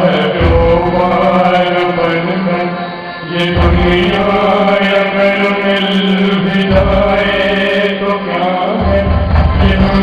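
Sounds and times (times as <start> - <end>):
deep bass layer: 0.0 - 8.0, 8.7 - 10.0
steady drone: 0.0 - 10.0
sustained chant-like chords: 0.0 - 10.0.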